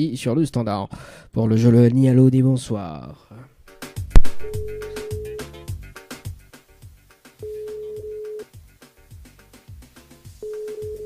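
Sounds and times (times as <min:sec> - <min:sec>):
background music with steady beat: 0:03.7 - 0:11.0
telephone ringback beep: 0:04.4 - 0:05.4, 0:07.4 - 0:08.5, 0:10.4 - 0:11.0.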